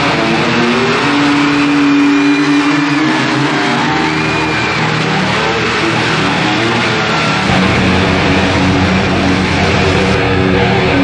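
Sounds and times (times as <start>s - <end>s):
hard rock band playing: 0.0s - 11.0s
lead electric guitar held notes: 7.4s - 11.0s.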